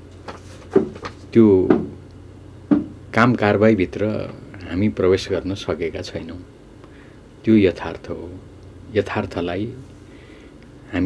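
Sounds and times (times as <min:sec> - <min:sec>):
man speaking: 0:01.3 - 0:02.0, 0:03.1 - 0:06.5, 0:07.4 - 0:09.9.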